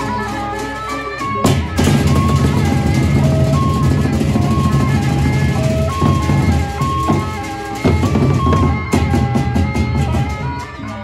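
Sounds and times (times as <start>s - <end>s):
melody of short high notes: 0.0s - 11.0s
large drums beating low rhythm: 1.4s - 11.0s.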